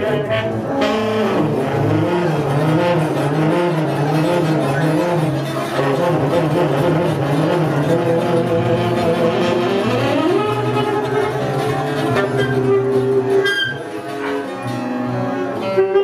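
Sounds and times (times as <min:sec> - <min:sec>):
bowed double bass: 0:00.0 - 0:16.0
guitar: 0:00.0 - 0:16.0
tenor saxophone: 0:00.0 - 0:16.0.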